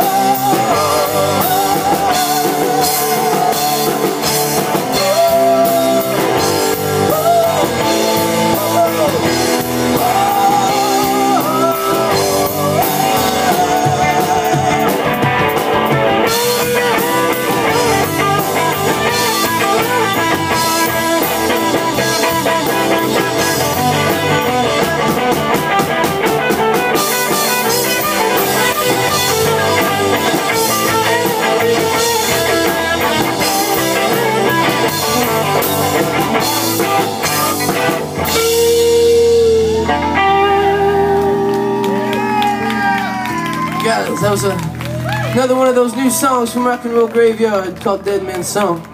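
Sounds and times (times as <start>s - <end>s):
bending guitar notes: 0.0s - 46.3s
live rock band playing: 0.0s - 48.9s.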